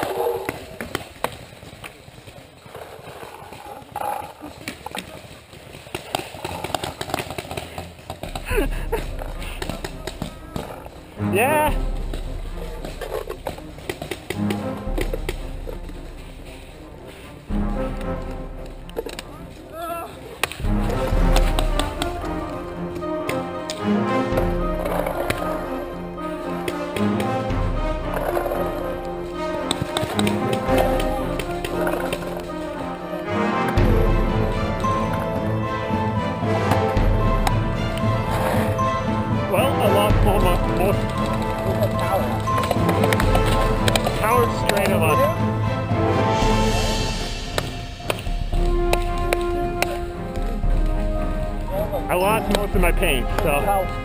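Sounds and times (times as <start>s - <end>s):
background music: 0.0s - 1.8s, 2.7s - 54.0s.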